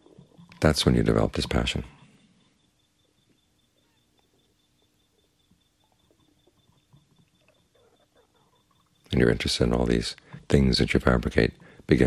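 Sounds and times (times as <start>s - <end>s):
faint steady hum: 0.0s - 12.0s
faint small ticks: 1.9s - 9.1s.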